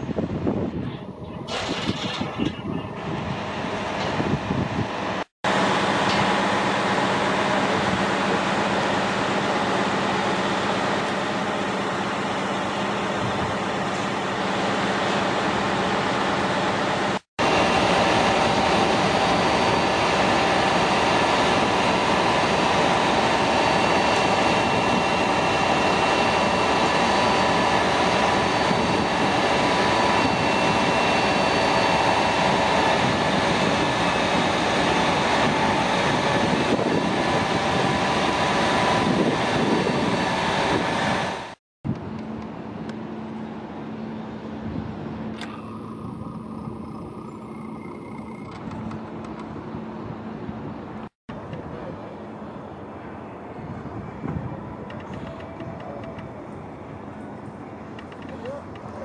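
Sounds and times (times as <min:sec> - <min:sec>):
crane truck engine running: 0:00.0 - 0:59.0
street hum: 0:00.0 - 0:59.0.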